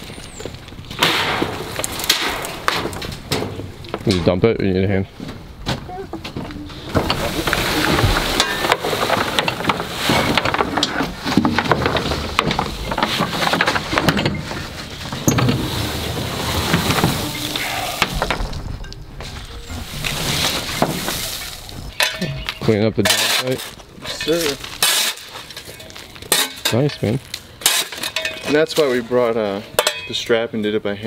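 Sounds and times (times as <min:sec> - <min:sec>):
branches rustling: 0:05.1 - 0:29.3
wheelbarrow rattling over wooden deck: 0:05.3 - 0:29.2.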